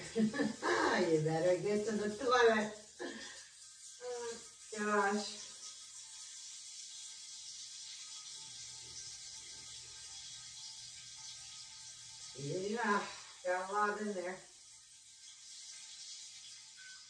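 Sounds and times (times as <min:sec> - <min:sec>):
running water hiss: 0:00.0 - 0:17.0.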